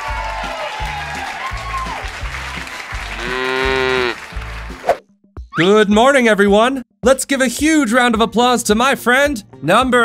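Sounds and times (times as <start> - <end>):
cartoon applause: 0.0 - 4.2.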